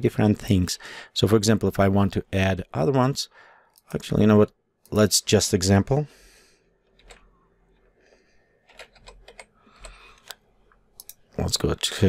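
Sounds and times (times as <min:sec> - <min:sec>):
typing on computer keyboard: 0:08.6 - 0:10.0.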